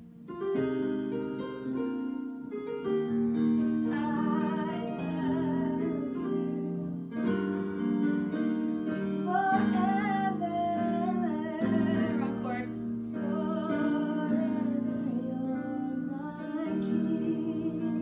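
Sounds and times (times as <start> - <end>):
electronic keyboard chords: 0.0 - 18.0
woman singing with vibrato: 3.8 - 7.3, 9.0 - 18.0.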